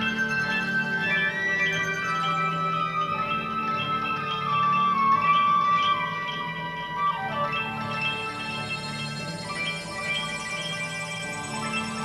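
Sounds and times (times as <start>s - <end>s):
ambient synthesizer chords: 0.0s - 12.0s.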